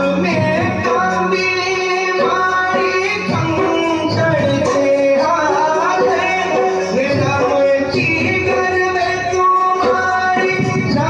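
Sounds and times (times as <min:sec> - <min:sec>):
devotional singing: 0:00.0 - 0:11.0
instrumental accompaniment: 0:00.0 - 0:11.0.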